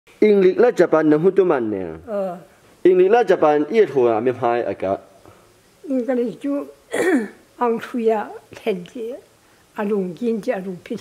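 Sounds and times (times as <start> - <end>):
elderly woman speaking: 2.0 - 2.5, 5.8 - 11.0
breathy throat clearing sound: 6.9 - 7.4.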